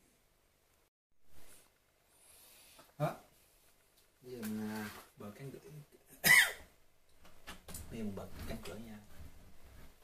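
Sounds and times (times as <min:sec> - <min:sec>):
man speaking: 0:04.2 - 0:06.1
man coughing: 0:06.1 - 0:06.7.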